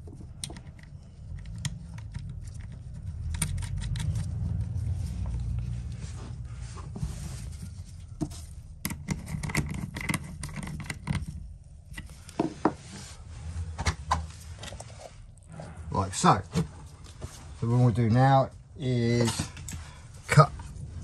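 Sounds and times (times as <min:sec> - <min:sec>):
metallic clicks and scrapes: 0:00.0 - 0:06.1, 0:08.8 - 0:12.4
low handling rumble: 0:00.7 - 0:08.8, 0:11.4 - 0:21.0.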